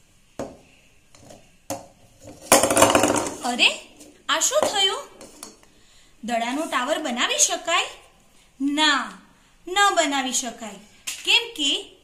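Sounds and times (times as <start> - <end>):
balls clattering on wooden table: 1.2 - 3.5.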